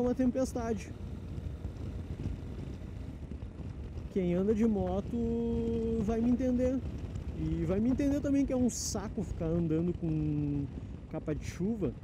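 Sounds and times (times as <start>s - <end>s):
motorcycle engine cruising: 0.0s - 12.0s
wind rush on microphone: 0.0s - 12.0s.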